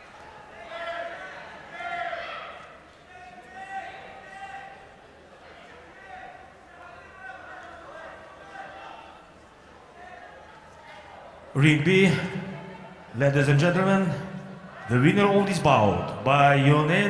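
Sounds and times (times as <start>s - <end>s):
voices calling out in hall: 0.0s - 17.0s.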